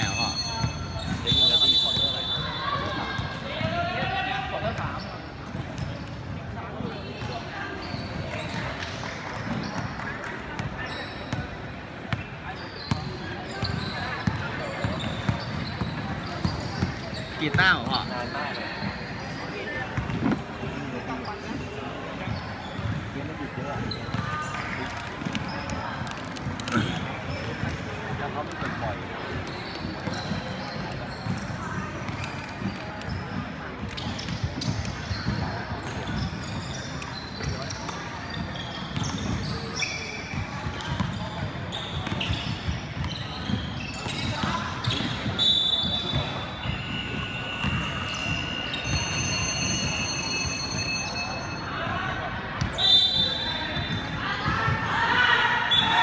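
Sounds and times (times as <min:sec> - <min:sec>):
murmur of voices: 0:00.0 - 0:56.0.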